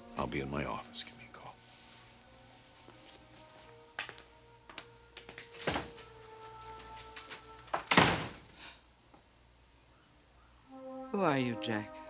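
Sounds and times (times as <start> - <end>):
soft background music: 0.0 - 8.2, 9.8 - 12.0
door shutting with heavy thud: 7.8 - 8.6.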